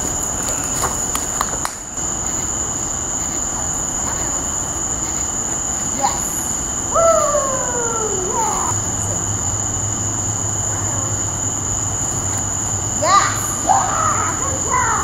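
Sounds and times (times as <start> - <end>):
crickets chirping: 0.0 - 15.0
drawn-out voice sliding in pitch: 7.0 - 8.9.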